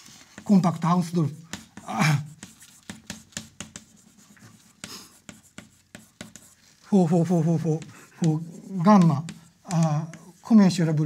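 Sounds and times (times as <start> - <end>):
chalk tapping and scraping: 0.0 - 11.0.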